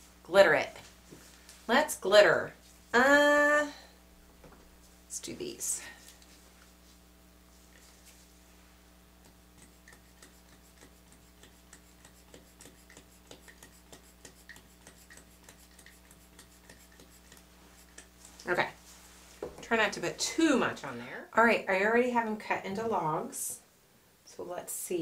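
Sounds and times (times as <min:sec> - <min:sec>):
low electrical hum: 0:00.0 - 0:25.0.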